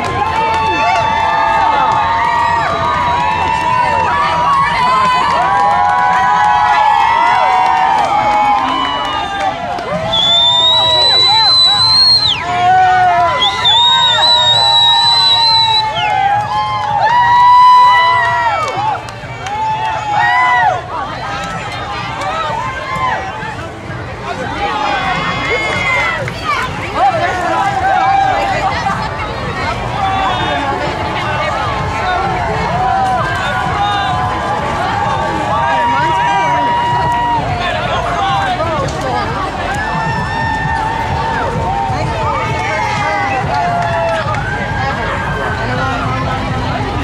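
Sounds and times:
crowd voices talking and calling: 0.0s - 47.0s.

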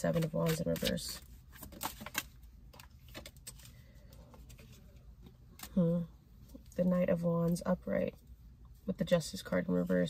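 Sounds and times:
cards clicking and tapping: 0.0s - 3.7s.

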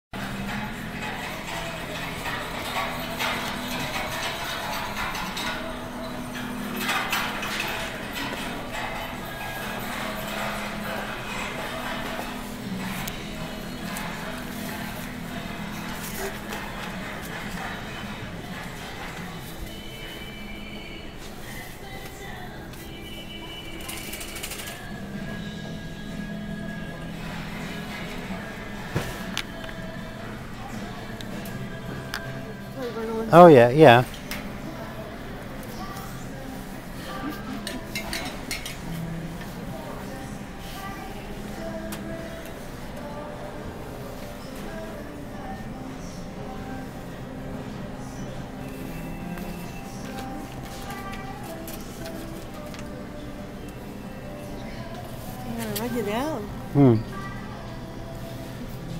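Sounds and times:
shopping cart rolling and rattling: 0.2s - 31.7s
background music over speakers: 0.2s - 58.9s
faint voices: 0.2s - 58.9s.

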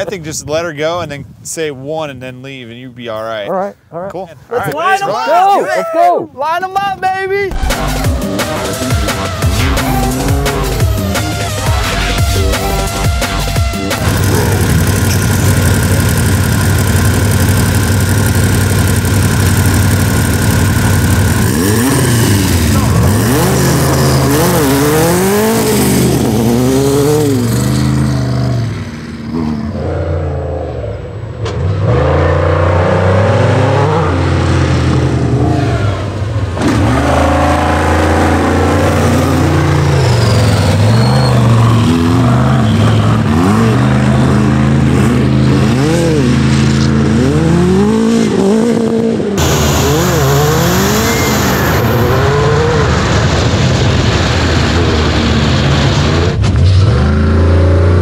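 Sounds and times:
race engines revving: 7.5s - 58.0s.

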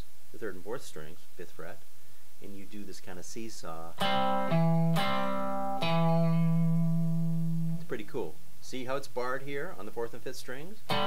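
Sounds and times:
electric guitar riff: 4.0s - 7.9s.

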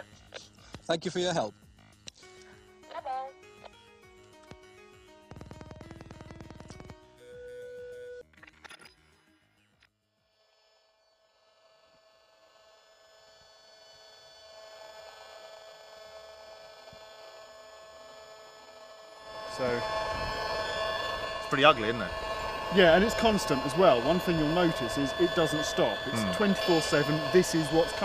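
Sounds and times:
buzz of many steady tones: 0.0s - 8.2s, 9.0s - 28.0s
electronic pulsing: 5.2s - 8.2s, 12.5s - 28.0s.

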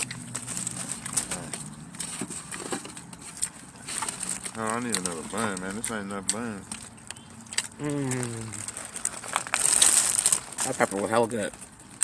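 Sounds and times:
person chewing food: 0.0s - 10.6s.

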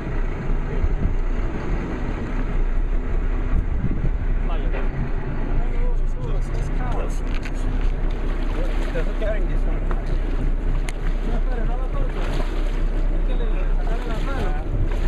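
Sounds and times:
boat engine idling: 0.0s - 15.0s.

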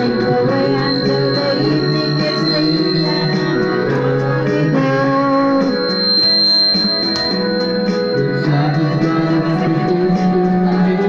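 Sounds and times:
high thin steady tone: 0.0s - 9.4s
karaoke backing music: 0.0s - 11.0s.

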